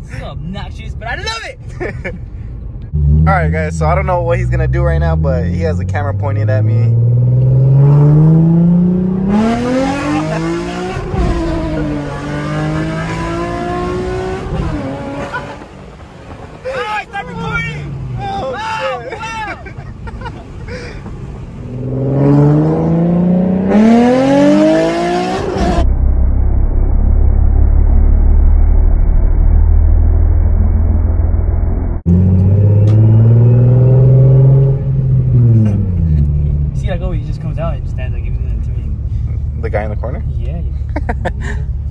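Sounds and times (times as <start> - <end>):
car engine revving and accelerating: 2.9 - 16.5, 21.4 - 25.8, 32.0 - 39.9
dull low rumble: 19.6 - 41.9.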